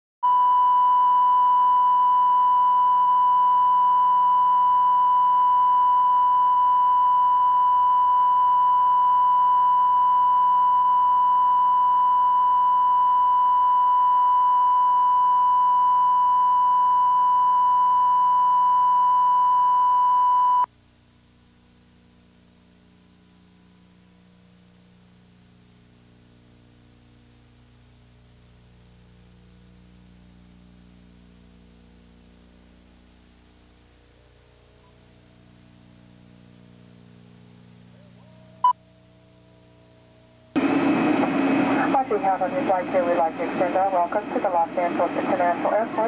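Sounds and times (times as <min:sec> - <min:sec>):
pure test tone beep: 0:00.2 - 0:20.7
faint tape hiss and hum: 0:00.2 - 0:46.0.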